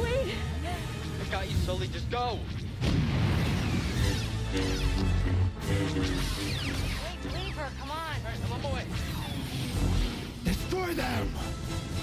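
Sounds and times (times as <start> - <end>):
action drama music: 0.0 - 12.0.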